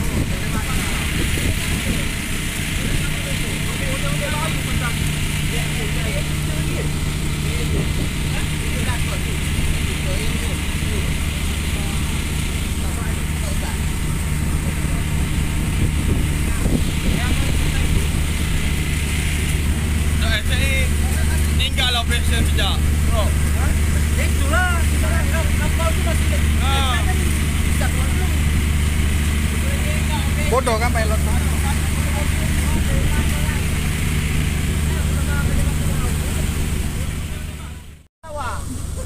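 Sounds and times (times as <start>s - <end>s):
boat engine droning: 0.0s - 39.0s
fire hoses spraying water: 0.0s - 39.0s.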